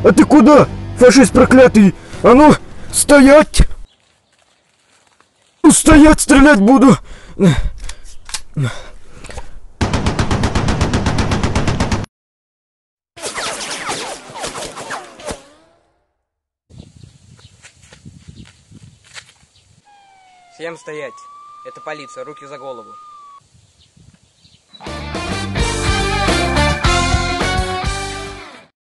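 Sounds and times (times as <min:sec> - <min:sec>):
police siren: 0:19.9 - 0:23.4
loud guitar music: 0:24.8 - 0:28.6.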